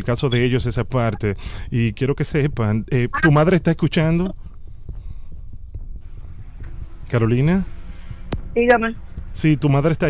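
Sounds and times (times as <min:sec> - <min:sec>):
low throbbing hum: 0:02.4 - 0:09.6.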